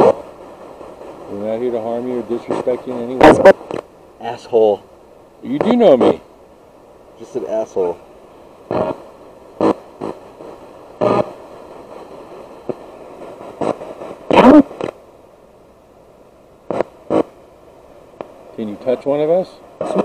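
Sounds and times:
chopped bursts of radio sound: 0.0s - 4.7s, 5.4s - 6.2s, 8.7s - 15.0s, 16.7s - 17.4s, 19.8s - 20.0s
radio static hiss: 0.0s - 20.0s.

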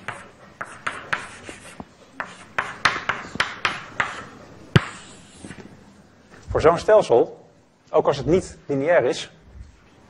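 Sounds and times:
chalk scratching on blackboard: 0.0s - 5.6s
chalk tapping on blackboard: 0.0s - 5.6s.

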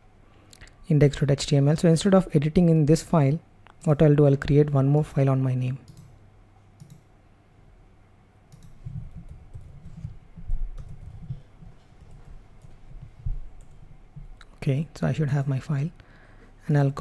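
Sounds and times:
keyboard typing: 6.8s - 7.0s, 8.5s - 14.3s.

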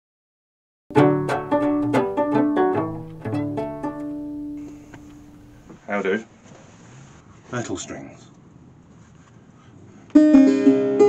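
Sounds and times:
banjo picking a tune: 0.9s - 5.7s, 10.2s - 11.0s.

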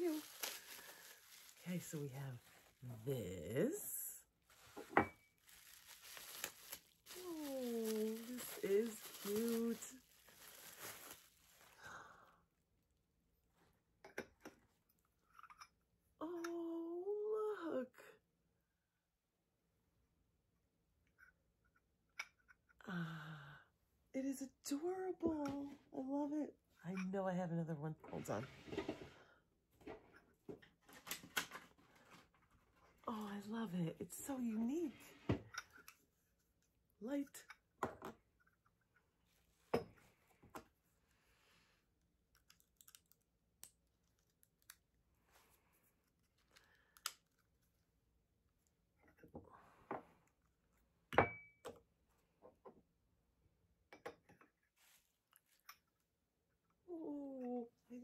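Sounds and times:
paper crinkling and tearing: 0.0s - 2.6s, 5.4s - 11.8s
packaging rustling: 0.0s - 2.8s, 4.5s - 11.8s.

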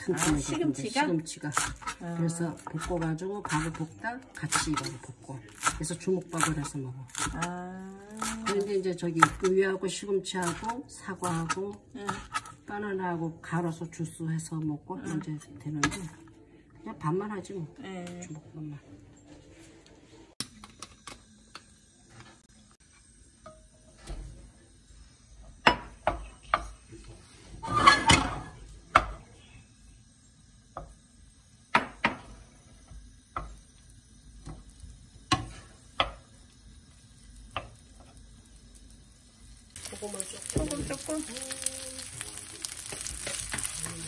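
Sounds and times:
wooden spoon scraping a frying pan: 1.3s - 6.6s, 10.4s - 12.6s, 39.8s - 44.0s.

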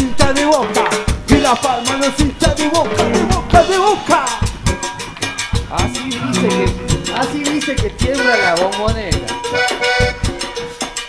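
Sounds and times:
live cumbia band playing: 0.0s - 11.0s.

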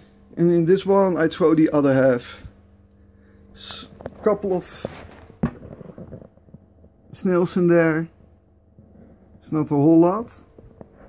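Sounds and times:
faint handling sounds: 3.6s - 7.1s.

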